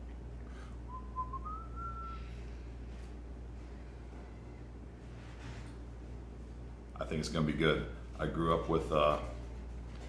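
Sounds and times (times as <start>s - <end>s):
steady low hum: 0.0s - 10.0s
person whistling: 0.8s - 2.4s.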